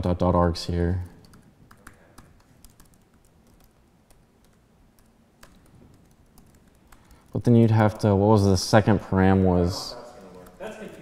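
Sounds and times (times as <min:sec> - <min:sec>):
faint keyboard keystrokes: 0:01.0 - 0:07.5.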